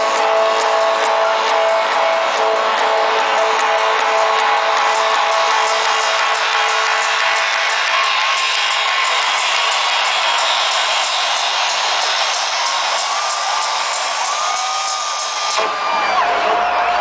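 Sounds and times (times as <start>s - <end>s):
crowd cheering and whooping: 0.0s - 17.0s
electronic dance music: 0.0s - 17.0s.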